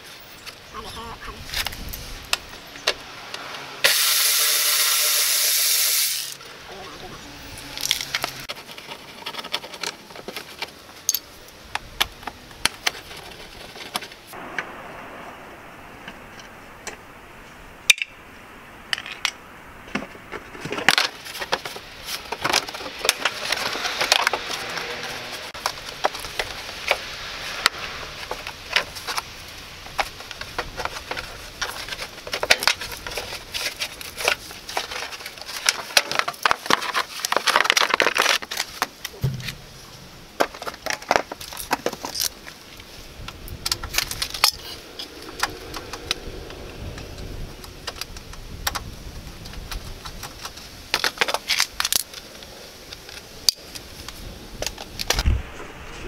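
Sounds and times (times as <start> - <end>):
plastic scraping and rustling: 7.5 - 14.4, 19.9 - 47.0, 47.6 - 55.3.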